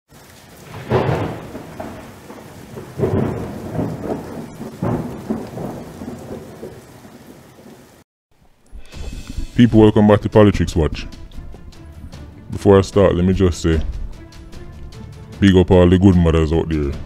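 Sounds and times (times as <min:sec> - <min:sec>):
steady rain: 0:00.1 - 0:17.0
thunder rolling: 0:00.6 - 0:08.0, 0:08.7 - 0:14.7.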